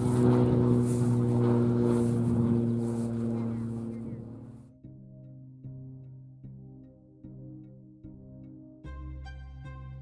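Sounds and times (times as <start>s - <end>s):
wind on microphone: 0.0s - 4.5s
model plane motor running: 0.0s - 4.6s
music: 4.0s - 10.0s.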